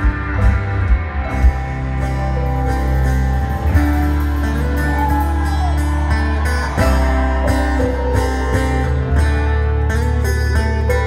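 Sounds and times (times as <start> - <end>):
electric guitars ringing: 0.0 - 11.0
steady bass line: 0.0 - 11.0.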